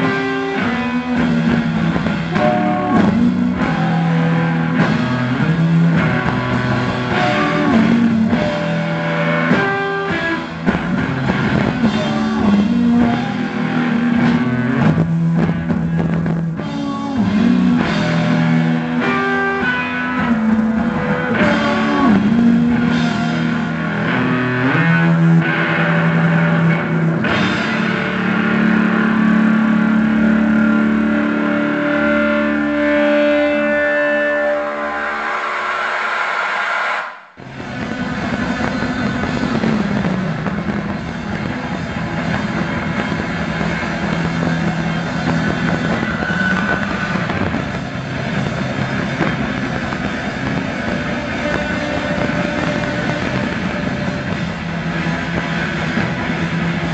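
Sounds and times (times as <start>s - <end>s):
drum kit: 0.0s - 56.9s
electric guitar: 0.0s - 56.9s.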